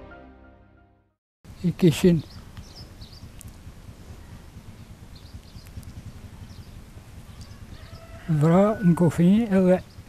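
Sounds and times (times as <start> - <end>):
low steady rumble: 1.5 - 10.0
faint bird chirps: 2.2 - 3.4, 4.1 - 8.4.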